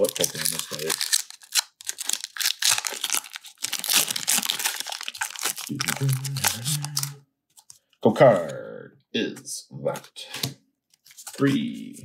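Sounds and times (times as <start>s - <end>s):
low voice: 0.0s - 0.9s, 5.7s - 7.2s, 8.0s - 10.4s, 11.4s - 12.0s
foil wrapper tearing and crinkling: 0.0s - 7.7s.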